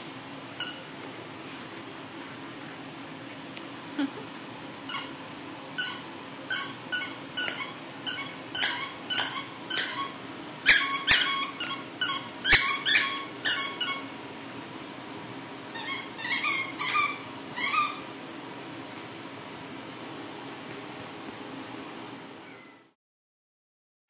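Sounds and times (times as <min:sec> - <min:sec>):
squeaky dog toy squeaking: 0:00.6 - 0:00.9, 0:04.9 - 0:05.2, 0:05.8 - 0:14.1, 0:15.8 - 0:18.1.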